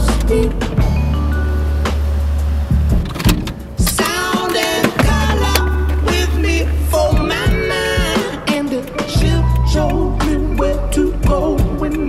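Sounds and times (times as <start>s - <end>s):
music playing: 0.1s - 12.0s
car tyre and road noise: 1.9s - 7.5s.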